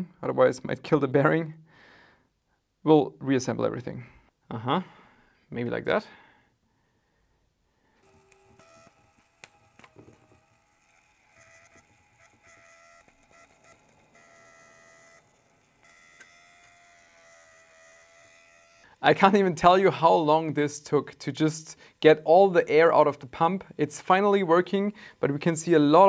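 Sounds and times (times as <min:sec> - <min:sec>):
water pump whining: 0:08.0 - 0:19.0.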